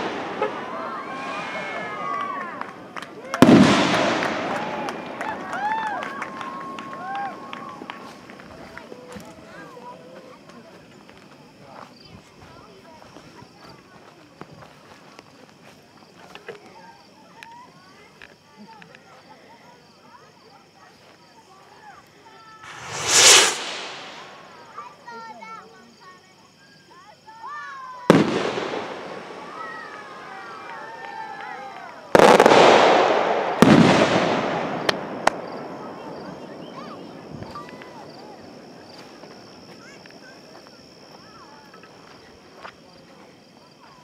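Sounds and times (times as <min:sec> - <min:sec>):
firework cracks: 0:00.0 - 0:08.5, 0:22.6 - 0:24.8, 0:28.1 - 0:31.5, 0:32.1 - 0:36.4
firework boom: 0:22.7 - 0:24.7, 0:32.2 - 0:35.6.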